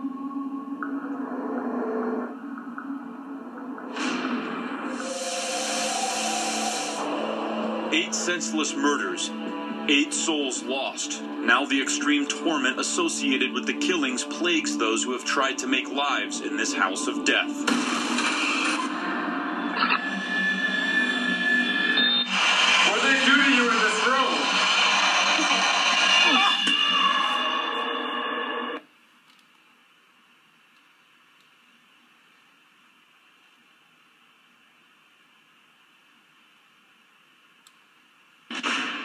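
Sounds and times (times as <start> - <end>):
television soundtrack music: 0.0 - 29.7, 37.6 - 39.0
hissing whoosh: 3.9 - 8.1.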